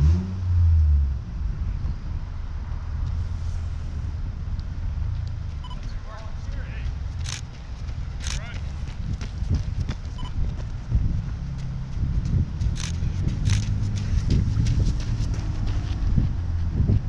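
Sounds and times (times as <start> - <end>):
wind rumbling on microphone: 0.0 - 17.0
footfalls on pavement: 5.2 - 17.0.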